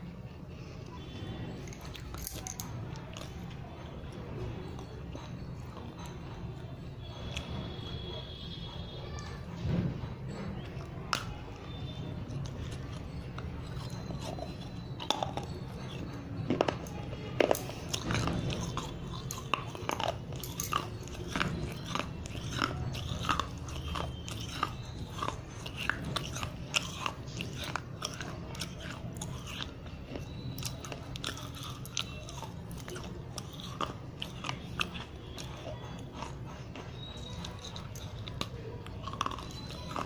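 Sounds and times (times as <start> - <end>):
gritty crunches of chewing clay: 0.0 - 40.0.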